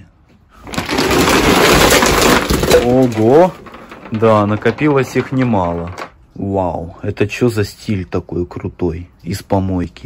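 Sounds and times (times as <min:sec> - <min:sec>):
plastic bag rustling: 0:00.6 - 0:06.1
objects clattering onto wooden floor: 0:00.6 - 0:06.2.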